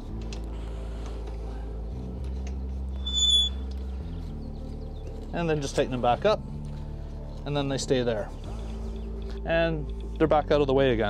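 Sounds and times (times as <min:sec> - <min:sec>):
high-pitched metallic squeak: 0:03.0 - 0:03.6.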